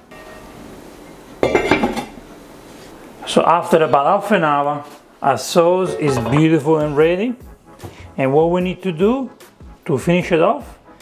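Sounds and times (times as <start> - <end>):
metal lid clattering onto pan: 1.4 - 2.1, 6.0 - 6.6.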